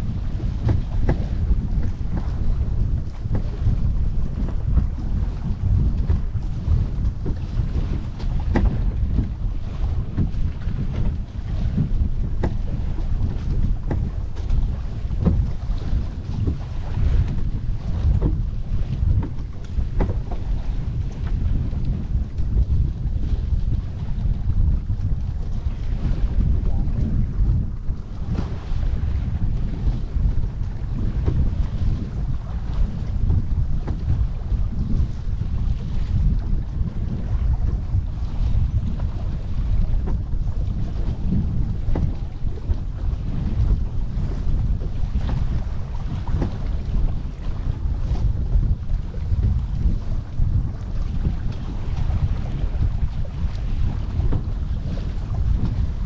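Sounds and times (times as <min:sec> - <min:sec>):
water rushing along hull: 0:00.0 - 0:56.0
wind buffeting microphone: 0:00.0 - 0:56.0.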